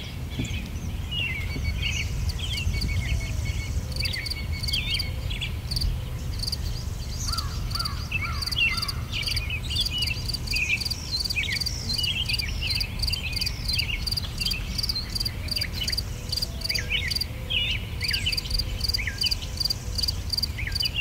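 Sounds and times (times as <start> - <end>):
birds chirping: 0.0 - 21.0
insects chirping: 3.6 - 5.1, 5.7 - 17.3, 18.0 - 21.0.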